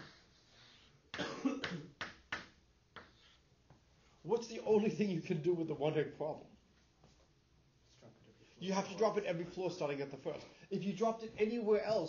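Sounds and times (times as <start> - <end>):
person coughing: 1.2 - 2.0.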